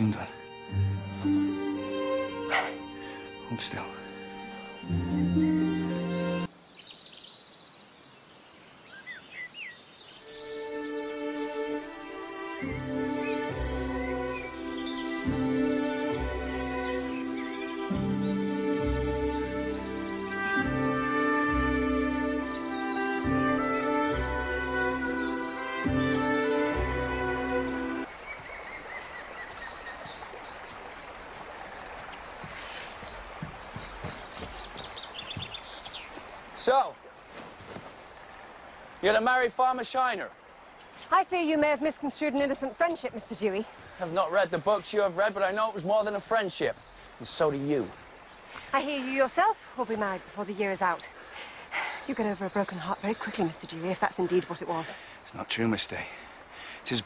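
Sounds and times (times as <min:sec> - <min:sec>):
songbirds chirping and whistling: 0:00.0 - 0:57.0
steady outdoor hush: 0:00.0 - 0:57.0
held music chords: 0:10.9 - 0:28.1.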